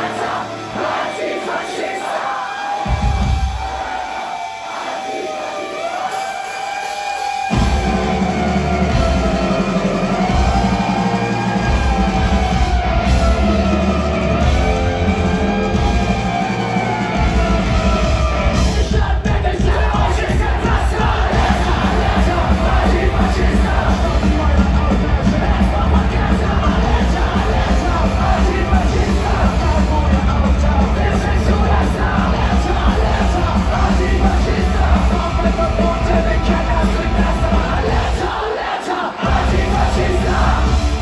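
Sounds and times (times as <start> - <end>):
live punk rock band: 0.0 - 41.0.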